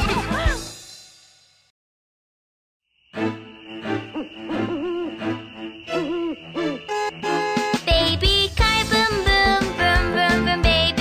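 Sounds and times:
cartoon halloween music: 0.0 - 1.0, 3.1 - 11.0
gliding pitched calls: 3.1 - 7.7.

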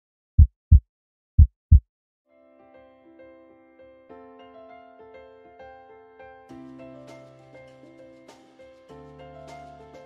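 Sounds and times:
heartbeat double beat: 0.4 - 1.9
soft keyboard music: 2.4 - 10.0.

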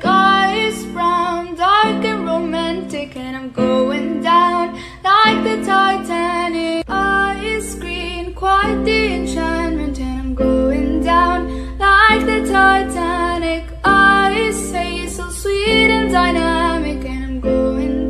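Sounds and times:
woman singing: 0.0 - 18.0.

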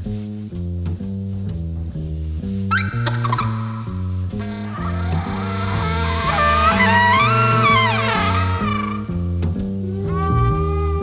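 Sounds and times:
double bass plucking: 0.0 - 11.0
alto saxophone melody: 4.3 - 9.1, 9.8 - 11.0
trumpet melody: 4.4 - 9.1.

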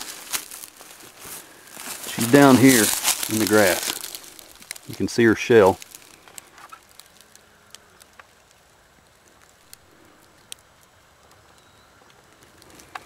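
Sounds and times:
faint high chirp: 11.5 - 12.1.

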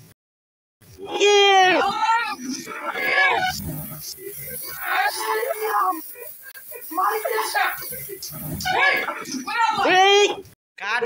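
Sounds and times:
person shouting: 1.0 - 2.4, 4.6 - 10.4
spray and sparklers hissing: 1.9 - 9.8.

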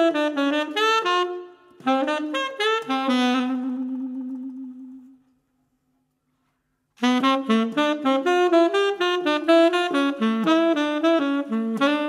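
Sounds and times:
saxophone long low note: 0.0 - 5.2.

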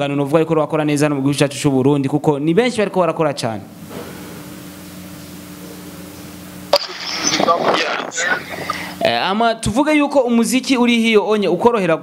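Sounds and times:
muffled indistinct voice: 7.1 - 8.7.

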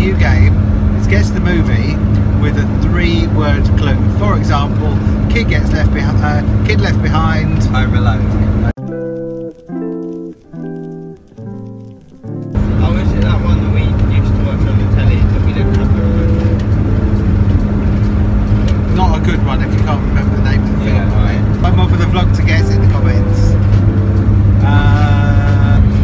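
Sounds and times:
voices: 0.0 - 8.7, 12.6 - 17.6, 18.8 - 24.0, 24.6 - 26.0
van engine drone: 0.0 - 8.8, 11.7 - 26.0
road noise: 0.0 - 26.0.

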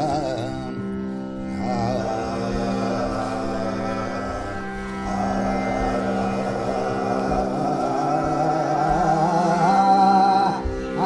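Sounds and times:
man singing ornamented line: 0.0 - 11.0
steady drone: 0.0 - 11.0
violin: 0.0 - 11.0.

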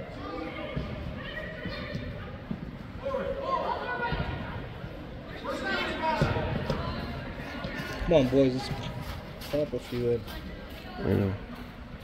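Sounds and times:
indistinct voices in sports hall: 0.0 - 12.0
soccer ball kicked: 6.2 - 7.8.

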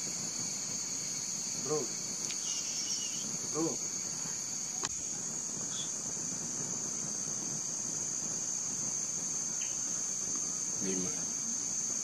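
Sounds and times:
insect chorus droning: 0.0 - 12.0.

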